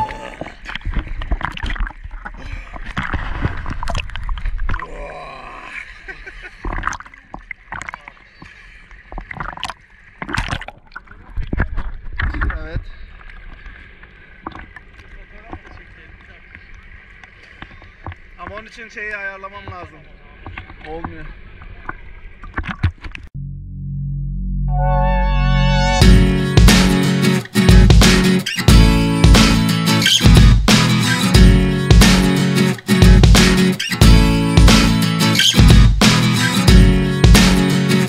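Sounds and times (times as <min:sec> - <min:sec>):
water splashing against camera: 0:00.0 - 0:05.0, 0:06.2 - 0:23.3.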